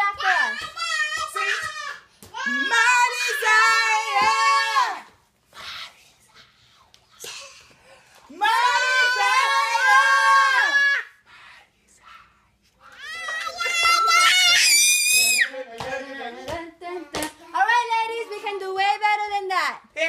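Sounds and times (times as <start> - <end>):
toddler and adults shouting calls: 0.0 - 5.1, 8.3 - 11.1, 12.8 - 15.6
high scream: 8.4 - 11.2, 13.0 - 15.5.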